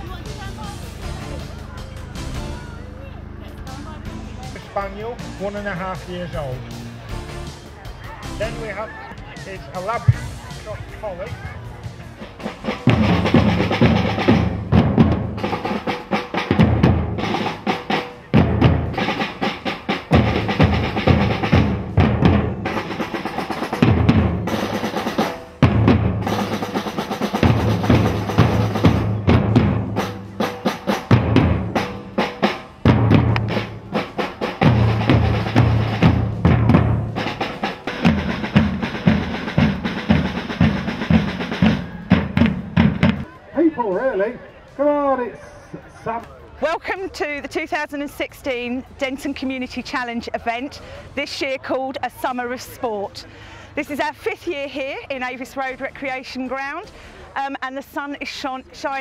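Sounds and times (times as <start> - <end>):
deep bass drums: 0.0 - 43.3
snare drums: 3.6 - 43.3.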